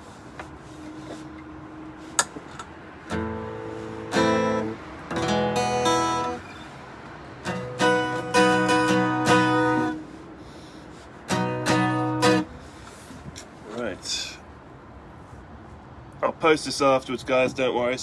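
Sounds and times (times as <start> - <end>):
acoustic guitar strumming chords: 3.1 - 6.6, 7.4 - 10.2, 11.3 - 12.6.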